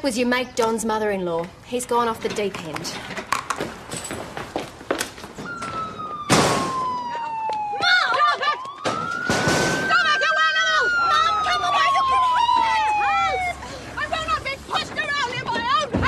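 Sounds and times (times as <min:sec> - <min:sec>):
police siren wailing: 0:05.4 - 0:14.1
voices calling out: 0:05.4 - 0:16.0.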